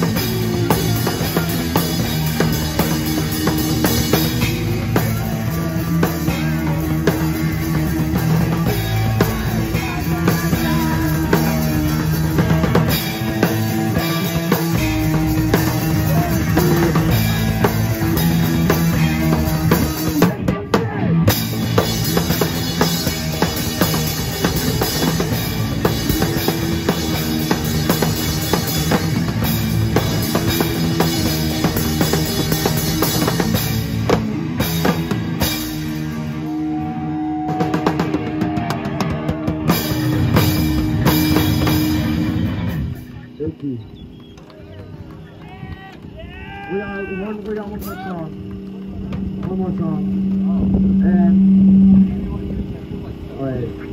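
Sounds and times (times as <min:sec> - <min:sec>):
live rock band playing: 0:00.0 - 0:44.0
voices: 0:00.0 - 0:53.9.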